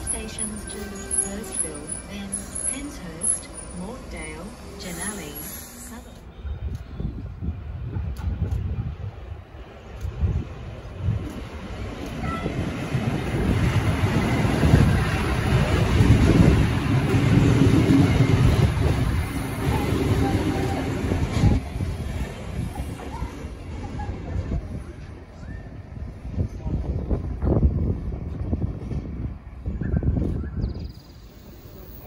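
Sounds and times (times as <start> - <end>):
diesel train passing: 0.0 - 32.0.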